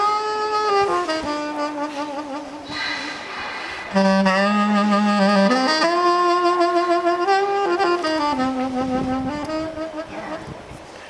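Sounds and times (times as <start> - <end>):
alto saxophone low notes: 0.0 - 10.9.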